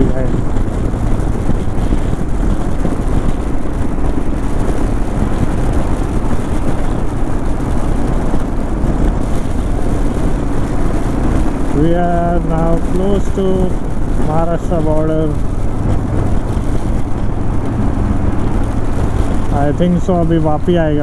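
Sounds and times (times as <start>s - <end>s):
motorcycle engine running: 0.0s - 21.0s
wet road noise: 0.0s - 21.0s
wind rushing: 0.0s - 21.0s.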